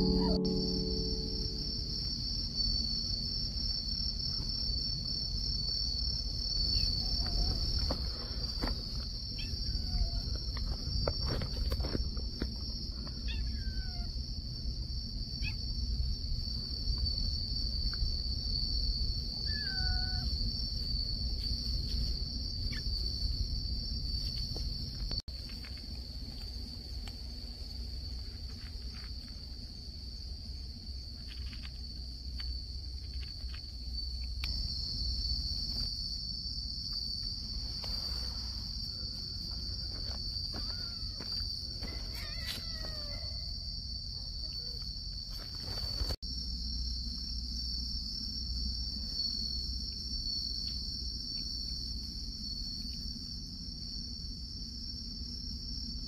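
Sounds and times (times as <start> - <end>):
insects chirring: 0.0 - 56.0.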